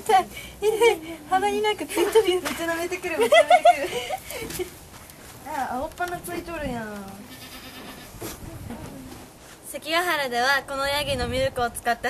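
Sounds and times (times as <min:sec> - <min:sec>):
goats bleating: 0:07.2 - 0:08.2.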